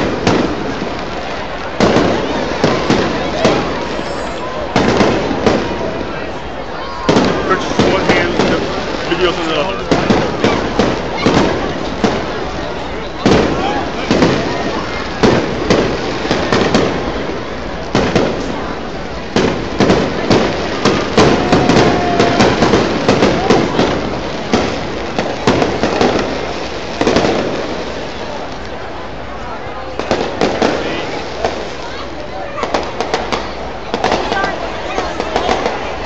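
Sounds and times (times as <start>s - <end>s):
crowd voices: 0.0s - 36.0s
fireworks bangs and crackles: 0.0s - 36.0s.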